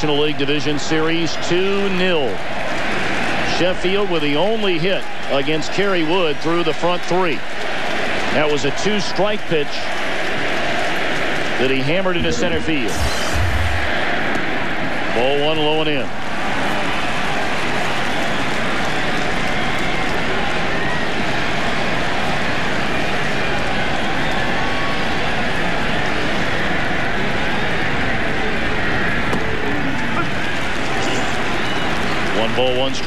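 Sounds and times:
stadium crowd din: 0:00.0 - 0:33.0.

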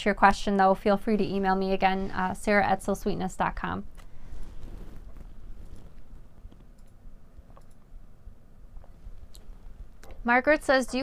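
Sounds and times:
woman speaking: 0:00.0 - 0:03.9, 0:10.2 - 0:11.0.

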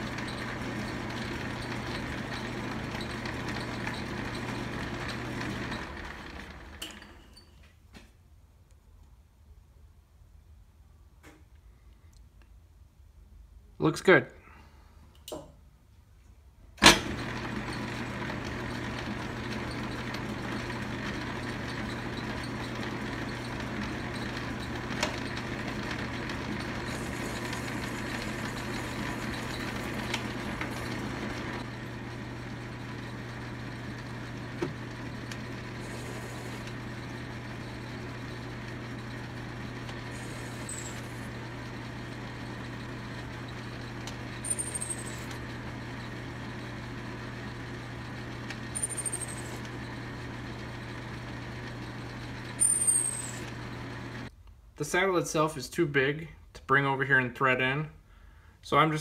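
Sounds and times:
metal lathe motor hum: 0:00.0 - 0:07.0, 0:17.0 - 0:54.3
high squeaks: 0:40.1 - 0:41.3.

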